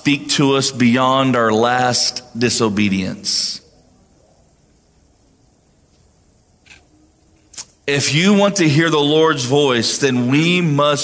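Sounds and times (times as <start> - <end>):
man speaking: 0.0 - 3.7, 7.8 - 11.0.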